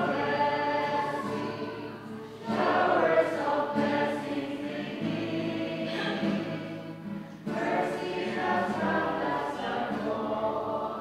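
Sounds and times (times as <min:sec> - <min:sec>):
women singing a hymn: 0:00.0 - 0:11.0.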